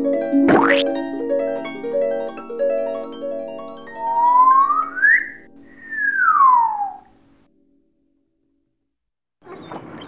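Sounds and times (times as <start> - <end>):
slide whistle tone: 3.9 - 7.3.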